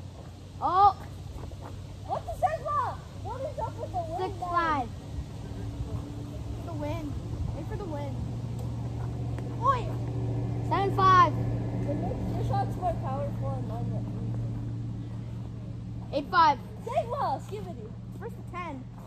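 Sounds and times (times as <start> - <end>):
children's high-pitched calls: 2.0 - 5.0
low engine drone: 3.2 - 18.6.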